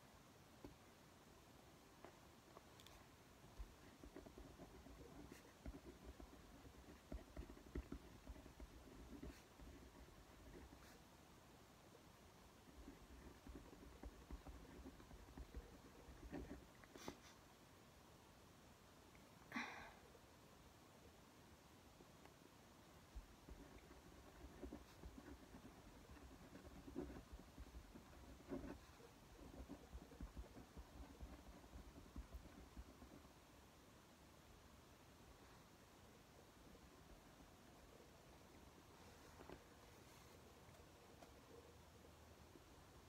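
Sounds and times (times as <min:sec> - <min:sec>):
pen scratching on paper: 0:03.5 - 0:11.2, 0:12.3 - 0:17.5, 0:23.1 - 0:33.5.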